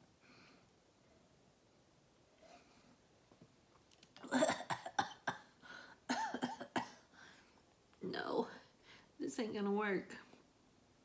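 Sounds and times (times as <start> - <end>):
woman coughing: 4.2 - 7.1.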